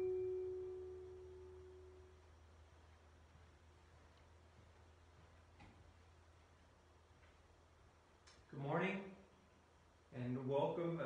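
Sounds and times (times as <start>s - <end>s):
pure-toned musical note: 0.0s - 2.2s.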